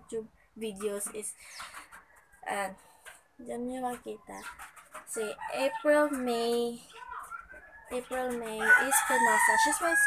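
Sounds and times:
woman speaking: 0.0s - 1.8s, 2.4s - 6.9s, 7.9s - 10.0s.

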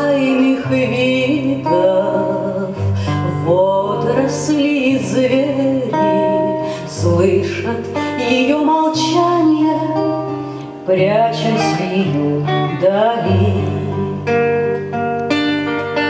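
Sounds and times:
woman singing: 0.0s - 14.9s
plucked nylon-string guitar: 0.0s - 16.0s.

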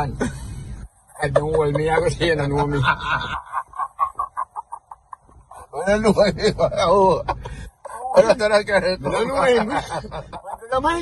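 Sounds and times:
man cackling laugh: 1.2s - 5.7s.

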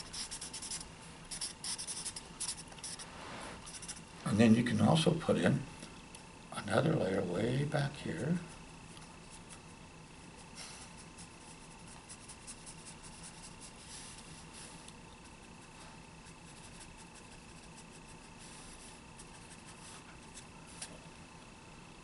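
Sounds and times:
felt-tip marker rubbing on paper: 0.0s - 4.0s, 10.8s - 14.5s, 15.2s - 21.0s
faint hum: 0.0s - 22.0s.

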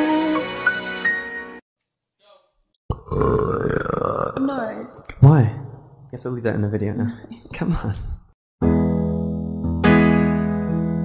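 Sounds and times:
person burping: 2.9s - 4.7s.

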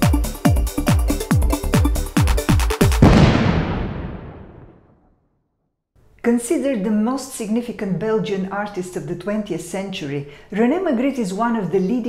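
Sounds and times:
loud electronic crash boom: 3.0s - 5.0s.

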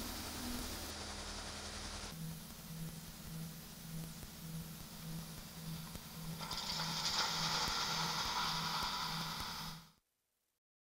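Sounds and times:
pulsing low electronic tone: 0.0s - 9.9s
band of hissing noise: 0.0s - 10.0s.

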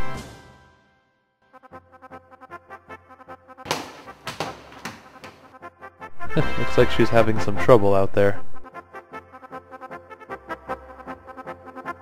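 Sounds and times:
balls thumping on floor: 3.7s - 5.5s
plucked background music: 6.2s - 8.0s.

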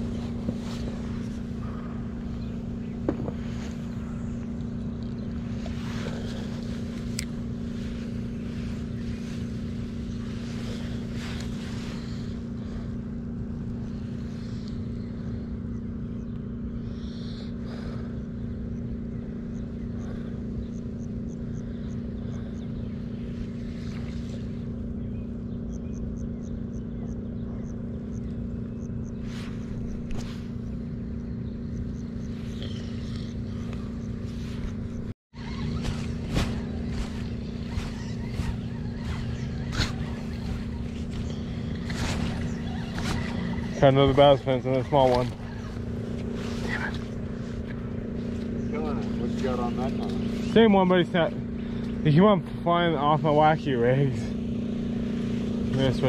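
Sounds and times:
steady motor hum: 0.0s - 56.0s.

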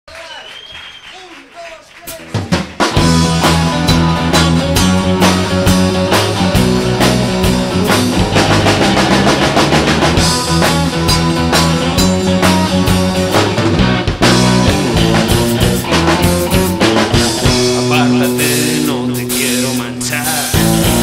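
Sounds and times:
rock band playing: 2.0s - 21.0s
drum hits: 2.1s - 21.0s.

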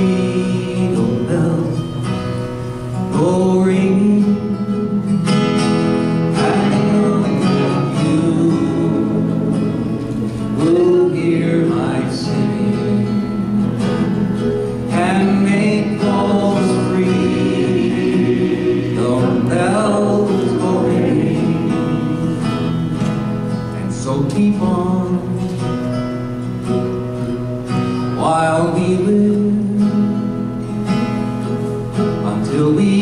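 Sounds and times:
several voices singing: 0.0s - 2.0s, 6.3s - 25.4s
acoustic guitar: 0.0s - 33.0s.

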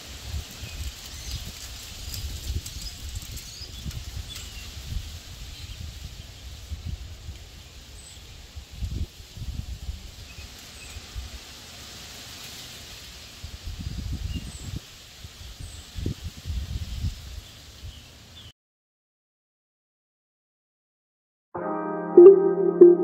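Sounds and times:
leaves rustling in breeze: 0.0s - 18.5s.

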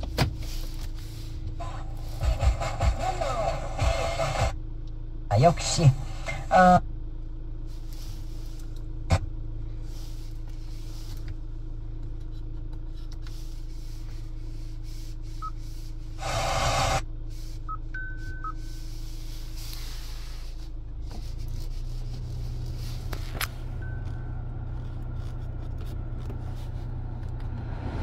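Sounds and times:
low cabin hum: 0.0s - 28.0s
short electronic beeps: 17.7s - 18.6s.

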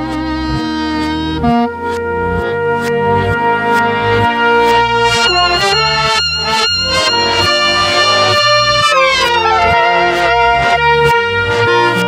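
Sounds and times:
clarinet music played backwards: 0.0s - 12.0s.

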